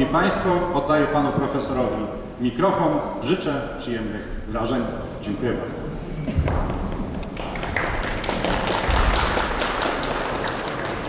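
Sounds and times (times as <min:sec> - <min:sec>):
audience applauding: 0:06.4 - 0:11.0.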